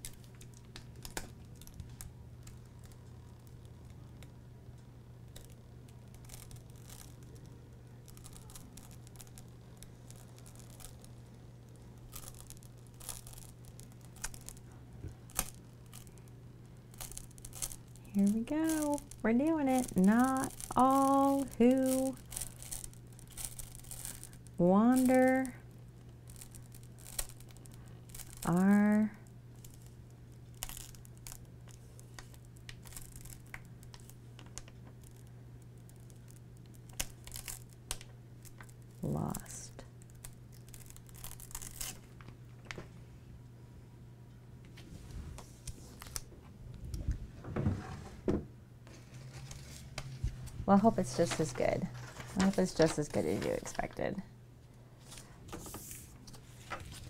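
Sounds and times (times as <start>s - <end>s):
low electrical hum: 0.0s - 57.0s
faint crinkling and tearing: 5.3s - 42.4s, 44.8s - 46.3s, 48.9s - 54.1s, 55.0s - 57.0s
vinyl sheet rubbed and peeled: 5.4s - 14.6s, 44.8s - 46.2s, 48.9s - 53.8s, 55.0s - 57.0s.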